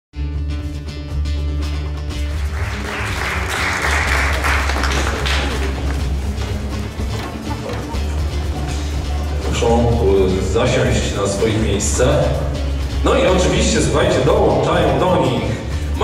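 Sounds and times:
music with steady low notes: 0.2s - 16.0s
audience applause: 2.2s - 9.5s
man speaking: 9.4s - 16.0s.

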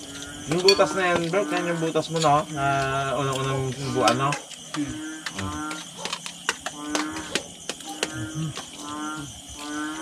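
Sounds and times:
spoons clinking on plates: 0.5s - 2.4s.

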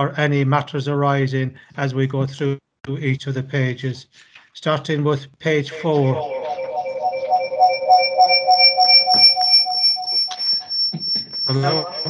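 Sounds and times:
electronic alarm beeping: 5.7s - 12.0s.

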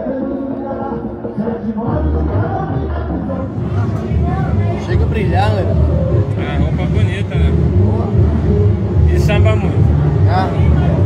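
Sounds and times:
voices singing: 0.0s - 11.0s
heavy pulsing drum beat: 3.4s - 11.0s.

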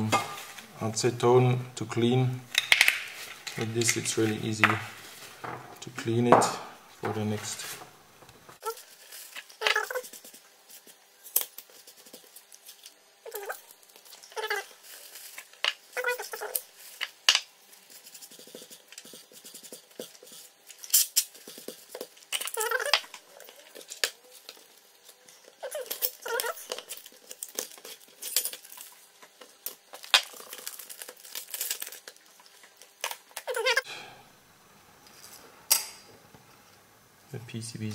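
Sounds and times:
paper crinkling: 8.6s - 33.8s.

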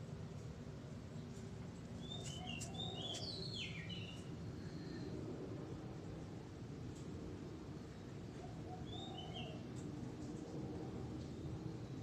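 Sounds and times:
small bird chirping: 2.0s - 4.3s.

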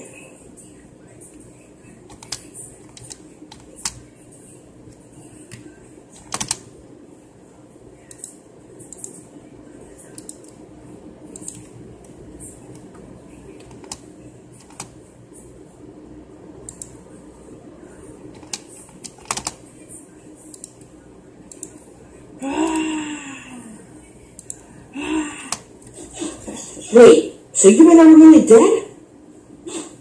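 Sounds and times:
steady low hum: 0.0s - 30.0s
keyboard and mouse clicks: 2.1s - 4.0s, 5.5s - 6.6s, 10.2s - 10.6s, 11.3s - 11.7s, 13.6s - 14.0s, 14.6s - 14.9s, 16.7s - 16.9s, 18.4s - 19.6s.

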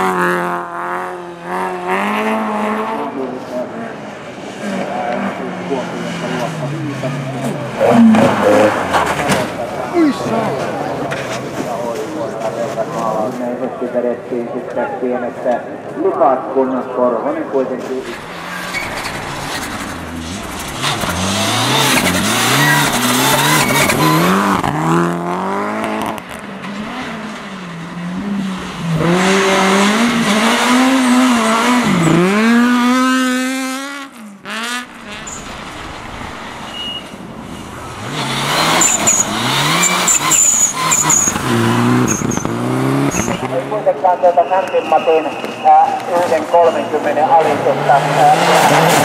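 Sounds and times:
rally car engines revving: 0.0s - 49.0s.

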